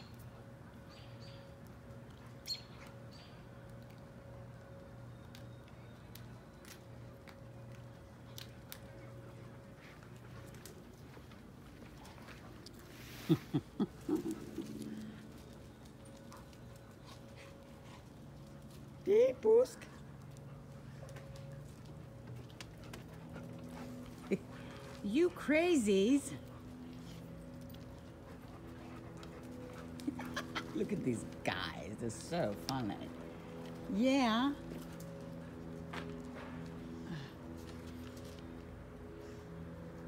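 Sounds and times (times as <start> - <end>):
dogs playing and running: 0.0 - 40.0
steady low hum: 0.0 - 40.0.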